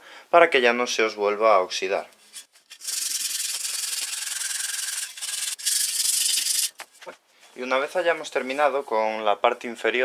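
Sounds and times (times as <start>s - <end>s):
wire brush scrubbing metal: 2.2s - 6.8s.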